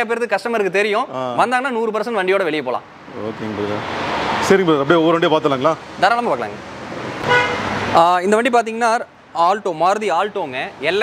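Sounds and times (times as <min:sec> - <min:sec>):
car horn toot: 0:07.2 - 0:07.8.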